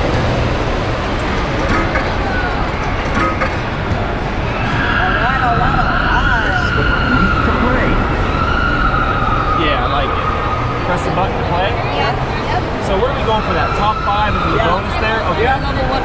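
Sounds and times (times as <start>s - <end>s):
crowd chatter: 0.0s - 16.0s
steady high electronic tone: 1.0s - 9.8s
game machine sounds: 1.1s - 3.8s
wavering siren-like game sound: 4.5s - 11.3s, 12.8s - 15.4s.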